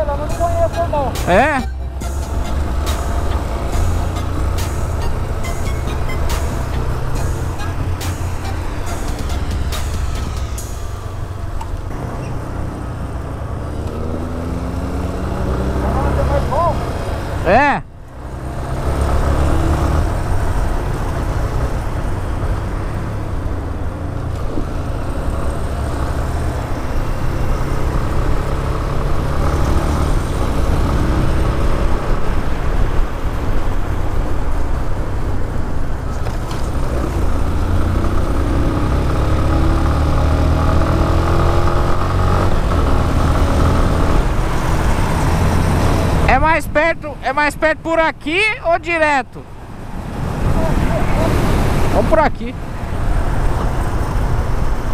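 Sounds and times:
motorcycle engine running: 0.0s - 17.6s.

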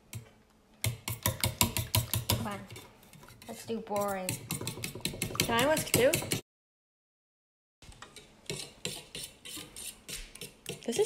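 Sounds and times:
utensil beating batter in metal bowl: 0.0s - 6.4s, 7.9s - 11.0s.

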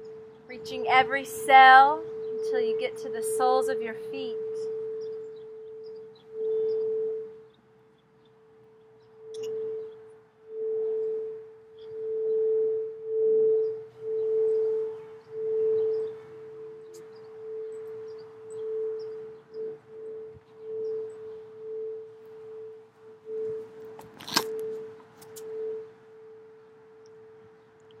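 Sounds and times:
singing bowl ringing: 0.0s - 7.5s, 8.5s - 27.6s.

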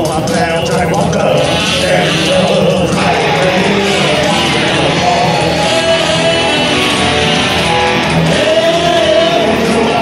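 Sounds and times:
man singing: 0.0s - 10.0s
rock band playing: 0.0s - 10.0s.

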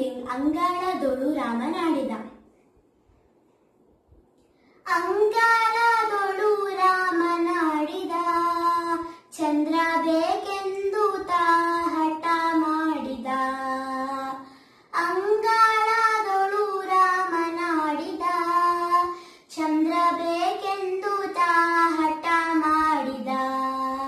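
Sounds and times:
girl singing unaccompanied: 0.0s - 2.4s, 4.8s - 24.0s.

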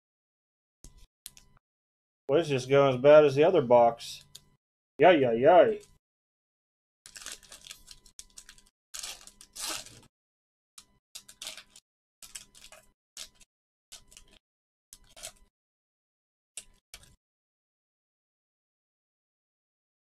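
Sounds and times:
foil wrapper tearing and crinkling: 7.1s - 10.1s, 11.2s - 14.4s, 15.0s - 15.4s.

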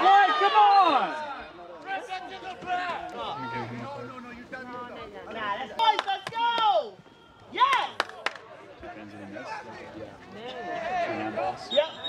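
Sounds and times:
players shouting: 0.0s - 4.5s, 5.3s - 8.4s.

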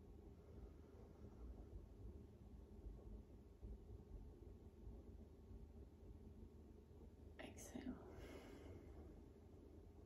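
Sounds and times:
faint breathy exhalation: 8.1s - 9.0s.

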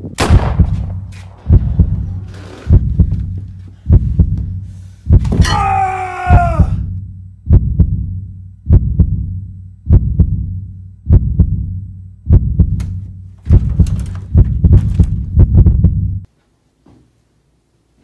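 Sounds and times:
low hum: 0.2s - 5.3s, 6.6s - 16.3s
heartbeat double thumps: 0.2s - 5.5s, 6.3s - 16.3s.

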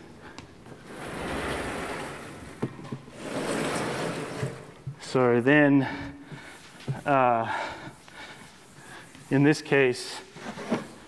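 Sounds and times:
chalkboard panels sliding: 0.8s - 4.9s.

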